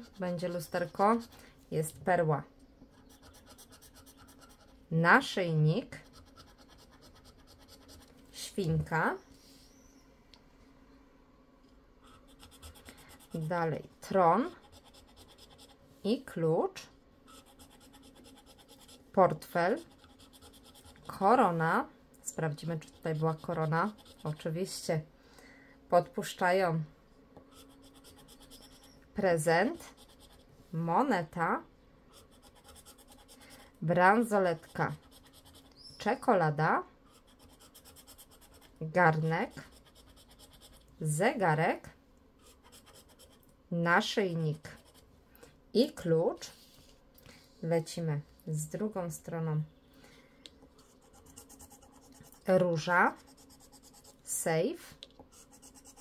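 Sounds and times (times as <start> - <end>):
tool scraping scratch card: 3.0 - 4.8, 12.1 - 13.5, 14.6 - 15.8, 17.3 - 19.0, 19.6 - 21.2, 22.7 - 24.4, 27.5 - 29.0, 32.2 - 33.6, 37.1 - 38.7, 55.4 - 56.0.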